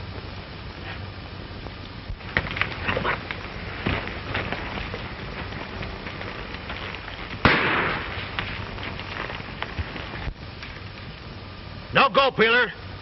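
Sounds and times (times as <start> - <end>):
old film soundtrack hiss and crackle: 0.0 - 13.0
rifle shot: 7.4 - 8.2.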